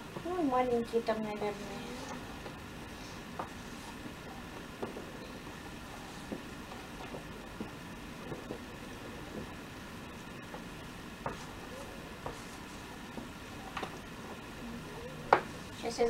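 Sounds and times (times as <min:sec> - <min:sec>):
background hum: 0:00.0 - 0:16.0.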